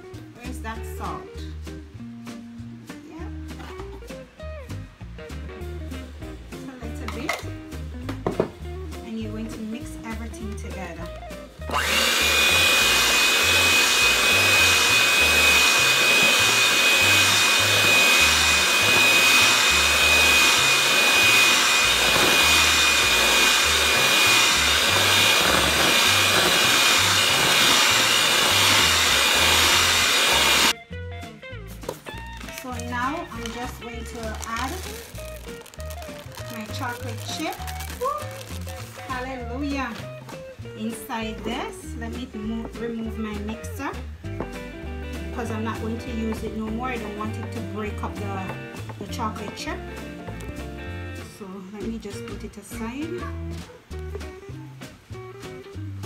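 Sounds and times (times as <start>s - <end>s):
background music with beat: 0.0s - 11.9s, 30.7s - 51.4s, 53.0s - 56.0s
electric hand mixer whining: 11.7s - 30.8s, 32.4s - 39.9s.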